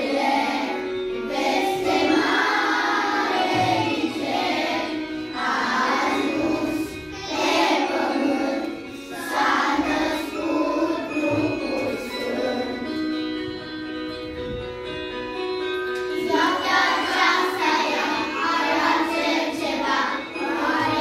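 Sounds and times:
children singing together: 0.0s - 13.1s, 16.1s - 21.0s.

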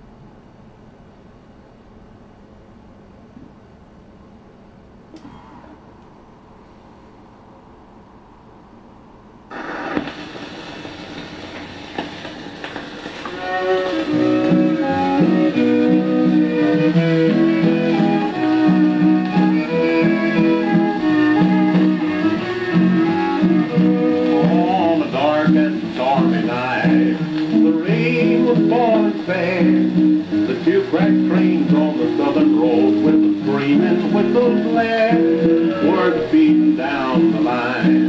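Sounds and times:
low hiss: 0.0s - 38.0s
record surface crackle: 9.5s - 38.0s
violin and guitar music: 13.2s - 38.0s.

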